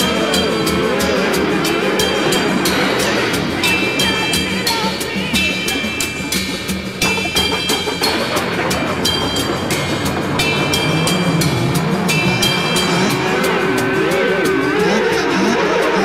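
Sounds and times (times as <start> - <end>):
drum and bass music: 0.0 - 16.0
warbling synth line: 0.0 - 16.0.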